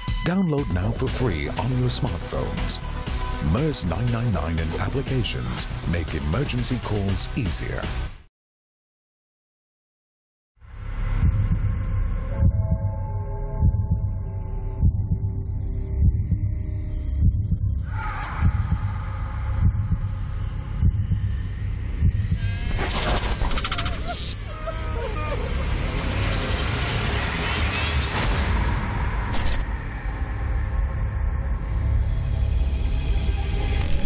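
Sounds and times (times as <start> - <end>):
deep heartbeat-like thump: 11.2 - 13.0, 13.6 - 15.4, 16.0 - 16.6, 17.2 - 17.8, 18.4 - 23.4.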